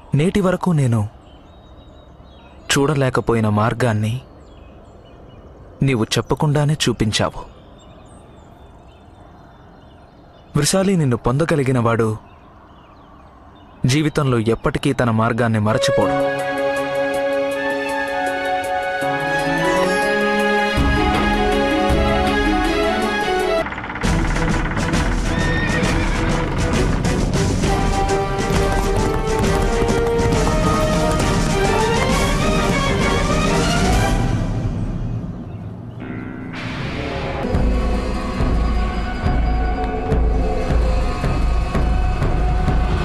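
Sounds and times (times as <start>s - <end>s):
background music: 15.7s - 43.0s
horses galloping with clattering hooves: 22.2s - 34.0s
heavy drum beats: 24.0s - 33.3s
horse whinnying: 25.1s - 26.8s.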